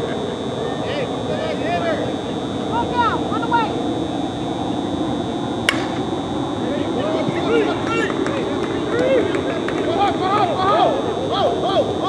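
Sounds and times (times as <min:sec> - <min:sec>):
bat hitting ball: 0:05.7 - 0:06.4
players chattering and calling: 0:05.7 - 0:08.5.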